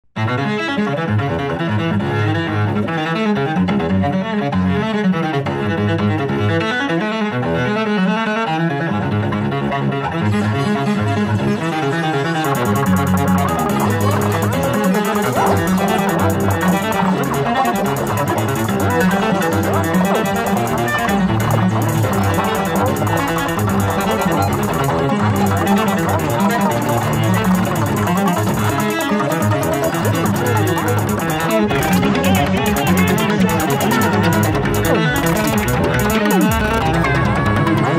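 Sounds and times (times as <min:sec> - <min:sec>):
fast high ticking: 0:12.4 - 0:37.1
electronic music with fast pulse: 0:12.4 - 0:37.8.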